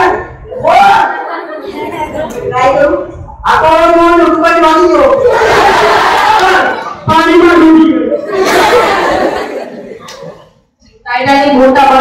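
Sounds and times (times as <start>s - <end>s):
crowd of children's voices: 0.0s - 12.0s
loud held shout: 5.2s - 9.3s.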